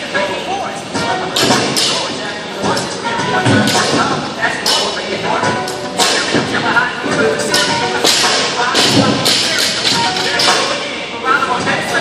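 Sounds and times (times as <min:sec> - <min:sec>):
background voices: 0:00.0 - 0:12.0.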